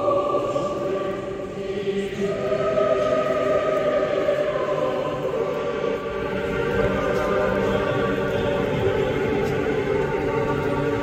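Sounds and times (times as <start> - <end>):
choir chanting in sustained chords: 0.0 - 11.0.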